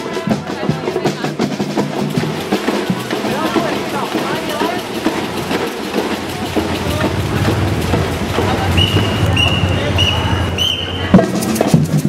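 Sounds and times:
crowd talking: 0:00.0 - 0:12.0
tram running on rails: 0:00.0 - 0:12.0.

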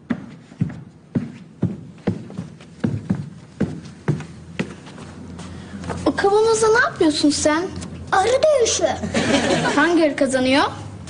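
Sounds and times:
footsteps walking: 0:00.0 - 0:06.1.

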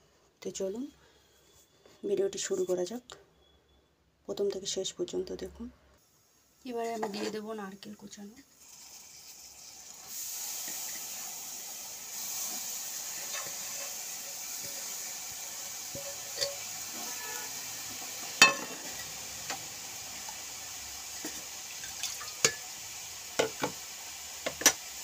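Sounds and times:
steady hiss: 0:07.5 - 0:25.0
metal plate clinking on pan: 0:16.0 - 0:17.4, 0:18.4 - 0:19.1.

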